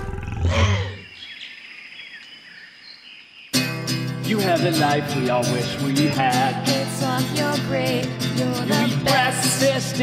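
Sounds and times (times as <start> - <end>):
acoustic guitar strumming: 3.6 - 10.0.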